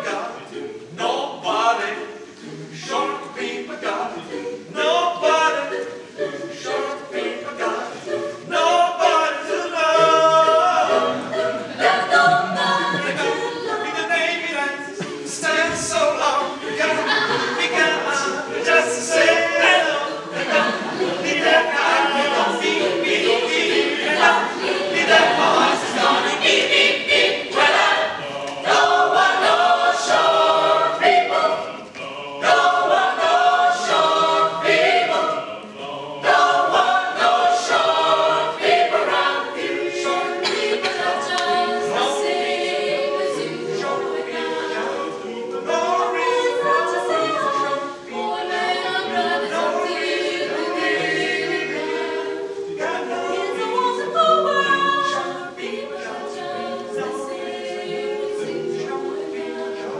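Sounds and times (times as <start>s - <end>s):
choir singing a cappella: 0.0s - 59.9s.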